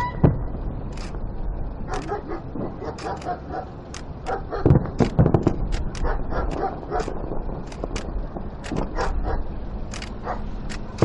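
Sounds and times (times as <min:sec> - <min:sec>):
fireworks booms: 0:00.0 - 0:01.6, 0:04.3 - 0:09.2
fireworks popping and cracking: 0:04.0 - 0:09.2.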